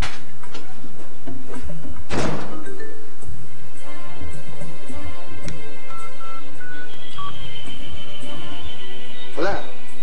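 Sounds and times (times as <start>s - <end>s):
background music: 0.0s - 10.0s
door shutting thud: 2.1s - 2.6s.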